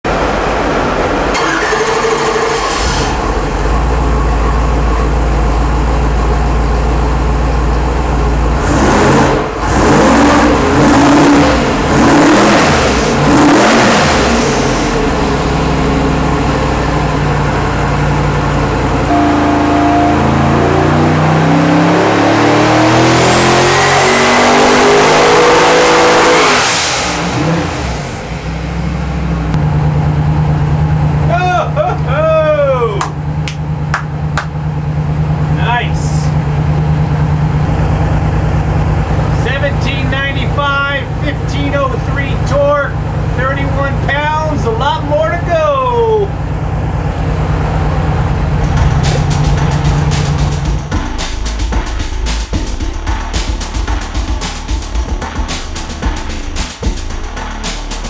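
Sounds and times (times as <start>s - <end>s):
engine idling and revving: 0.1s - 58.0s
turbo whistle: 19.1s - 20.7s.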